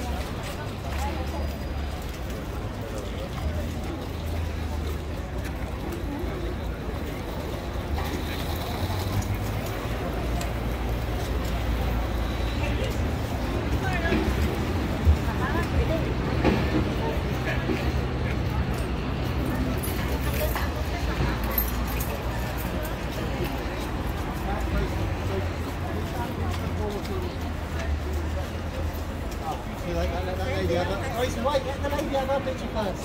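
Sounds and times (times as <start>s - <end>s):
low traffic rumble: 0.0s - 33.0s
passers-by talking: 0.0s - 33.0s.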